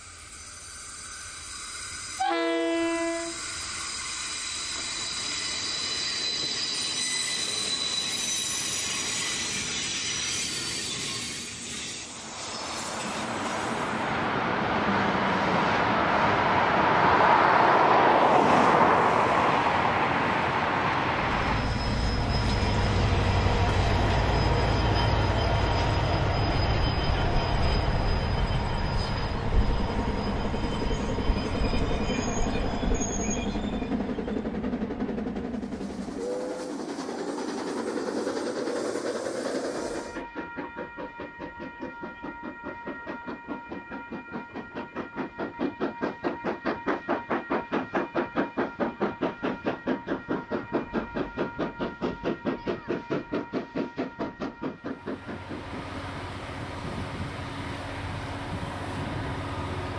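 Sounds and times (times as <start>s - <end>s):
train wheels squealing: 0.0s - 14.4s, 20.7s - 59.9s
train rumbling past: 0.0s - 59.9s
steam locomotive chuffing: 21.2s - 59.9s.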